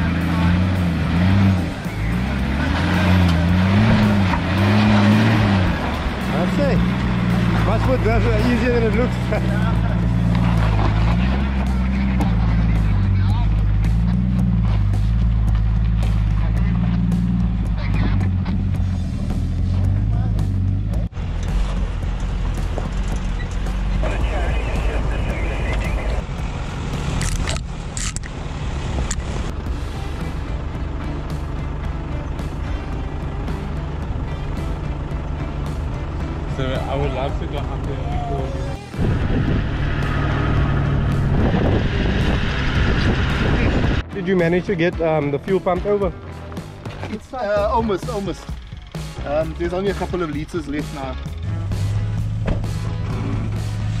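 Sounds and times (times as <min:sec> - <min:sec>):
off-road engine revving: 0:00.0 - 0:54.0.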